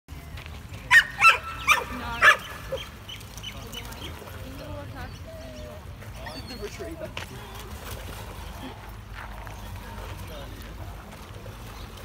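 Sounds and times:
water sloshing: 0.1s - 12.0s
dogs splashing in water: 0.8s - 12.0s.

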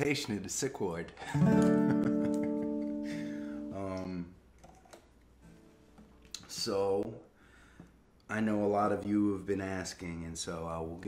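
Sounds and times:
fingers clicking on strings: 1.5s - 2.9s.

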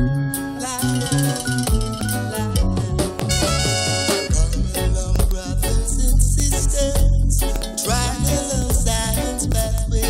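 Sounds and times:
reggae music with deep bass: 0.0s - 10.0s.

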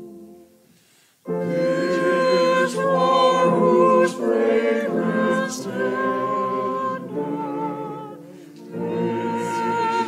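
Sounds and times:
church choir singing unaccompanied: 0.0s - 10.0s.

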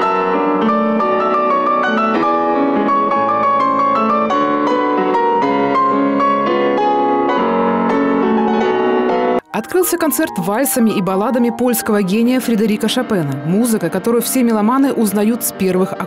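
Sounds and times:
solo piano playing classical music: 0.0s - 16.0s.

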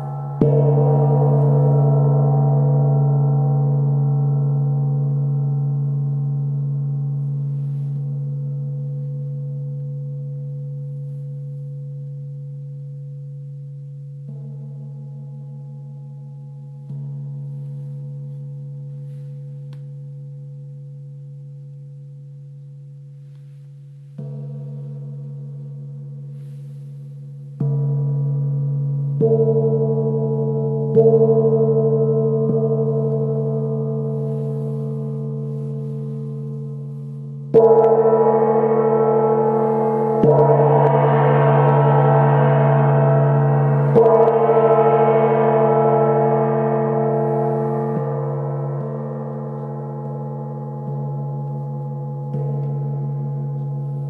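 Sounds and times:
gong ringing: 0.0s - 4.0s, 37.6s - 51.4s.

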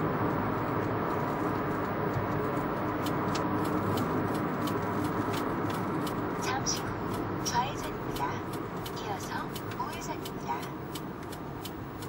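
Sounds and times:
car road and engine noise: 0.0s - 12.0s.

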